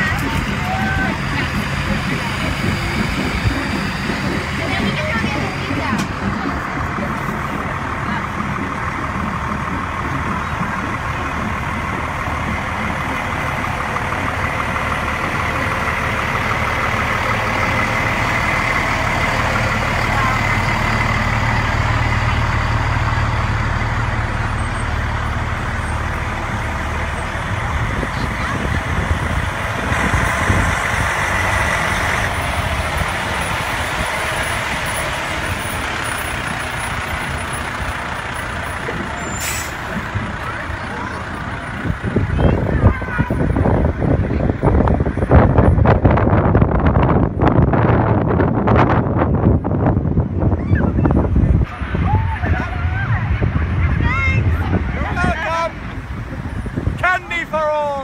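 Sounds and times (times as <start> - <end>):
fire truck engines rumbling: 0.0 - 58.0.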